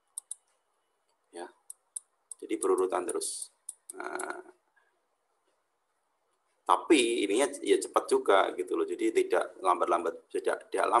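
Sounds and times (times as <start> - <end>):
stylus tapping a screen: 1.6 - 4.4.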